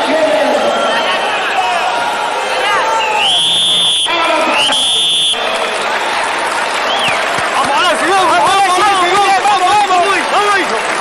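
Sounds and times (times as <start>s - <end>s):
arena crowd noise: 0.0s - 11.0s
long rising whistles: 3.0s - 5.9s.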